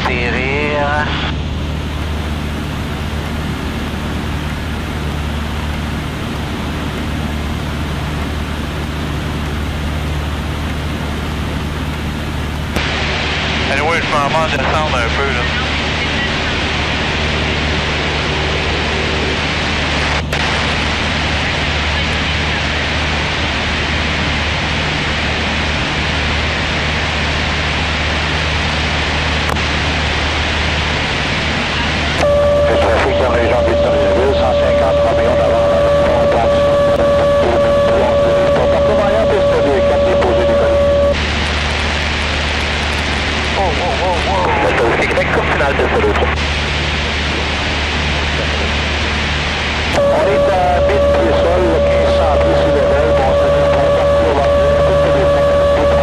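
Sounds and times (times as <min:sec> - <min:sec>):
indistinct radio voices: 0:00.0 - 0:01.4, 0:12.8 - 0:20.6, 0:31.8 - 0:56.0
aircraft engine and propeller droning: 0:00.0 - 0:56.0
radio whistle: 0:32.1 - 0:41.8, 0:49.9 - 0:56.0.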